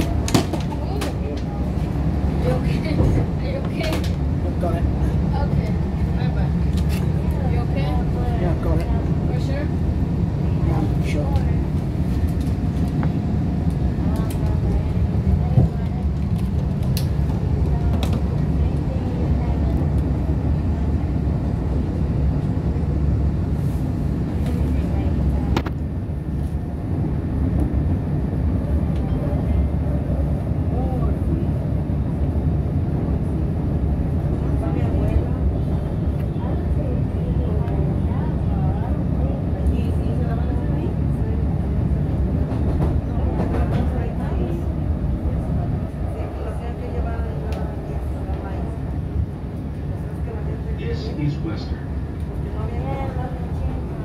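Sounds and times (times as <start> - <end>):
train wheels rumbling on rails: 0.0 - 51.1.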